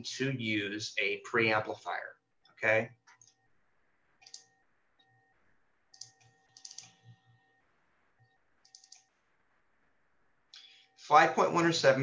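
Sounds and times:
computer keys clicking: 0:04.2 - 0:05.1, 0:05.9 - 0:07.2, 0:08.2 - 0:09.2.

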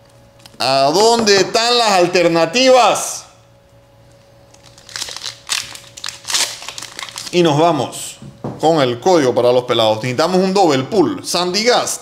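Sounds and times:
foil wrapper crinkling: 0:04.5 - 0:07.5.

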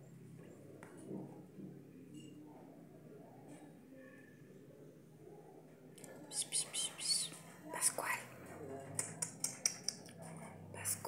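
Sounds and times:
person whispering: 0:06.0 - 0:08.4, 0:09.0 - 0:11.0.

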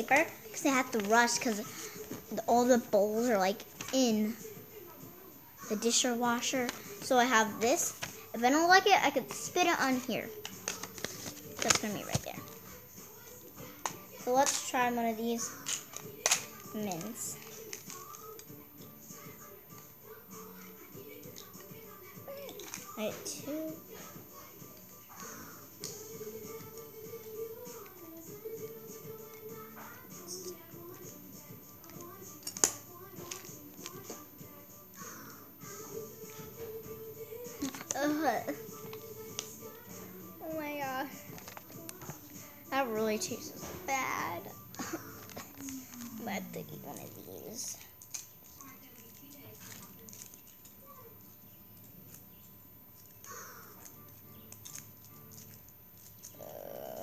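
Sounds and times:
quiet background music: 0:00.0 - 0:57.0.

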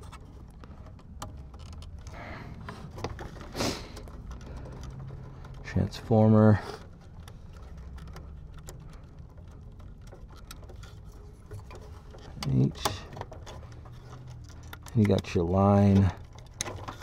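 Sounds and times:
clicks and rustles of wires: 0:00.0 - 0:17.0.

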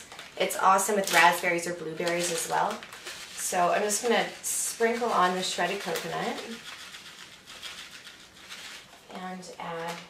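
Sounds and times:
shredded coconut pattering: 0:00.0 - 0:09.0.

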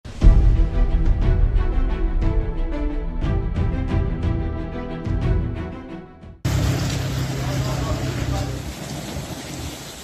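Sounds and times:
heavy rain on a flooded street: 0:06.5 - 0:10.0.

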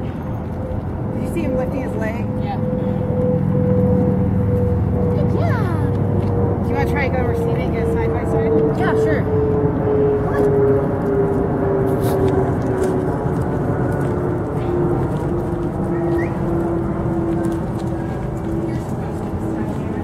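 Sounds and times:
low rumble: 0:00.0 - 0:20.0.

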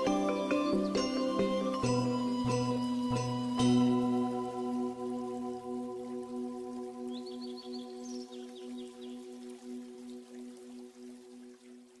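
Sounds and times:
high chirps: 0:00.0 - 0:05.6
ambient music bell-like chord: 0:00.0 - 0:09.8.

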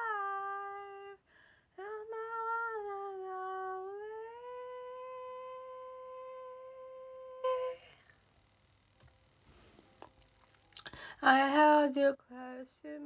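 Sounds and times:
woman singing long wordless note: 0:01.8 - 0:08.0.

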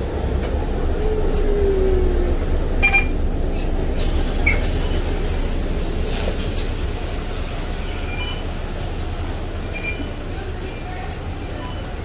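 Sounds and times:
bus engine idling: 0:00.0 - 0:12.0.

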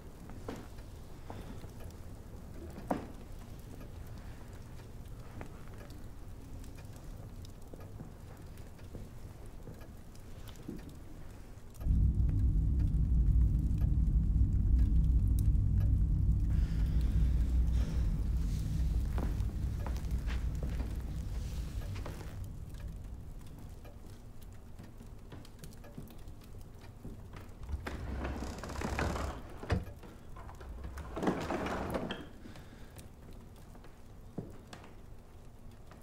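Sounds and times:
faint ticks: 0:00.0 - 0:31.2
low ambience: 0:00.0 - 0:34.4
deep rumbling drone: 0:11.8 - 0:24.5, 0:27.6 - 0:31.8.

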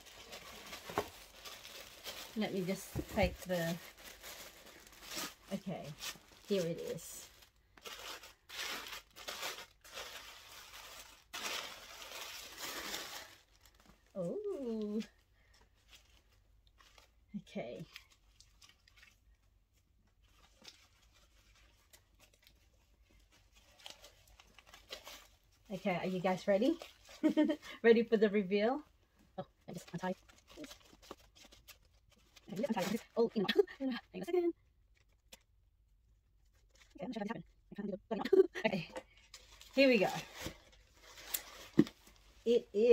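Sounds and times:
tissue paper rustling: 0:00.0 - 0:17.2, 0:17.8 - 0:27.8, 0:29.7 - 0:33.7, 0:39.3 - 0:42.9.

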